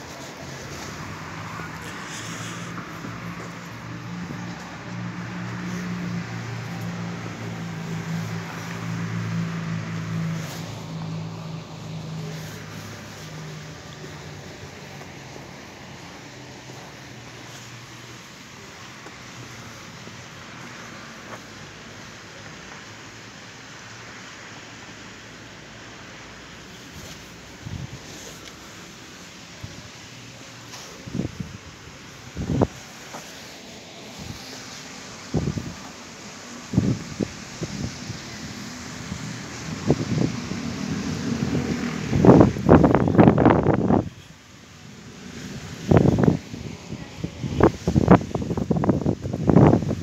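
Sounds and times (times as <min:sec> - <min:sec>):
distant traffic hum: 0:00.0 - 0:50.0
wind and handling on microphone: 0:25.9 - 0:50.0.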